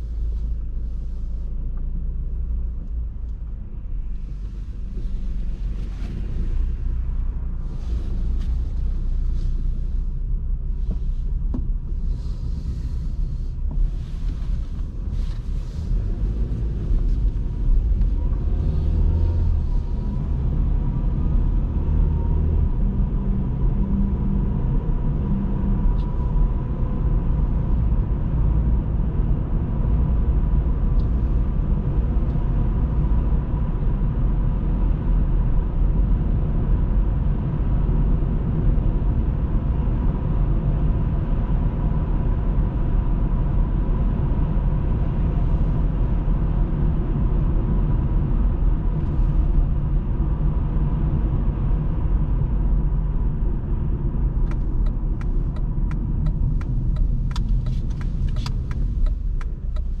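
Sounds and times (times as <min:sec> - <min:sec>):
car tyres and engine rumble: 0:00.0 - 1:00.0.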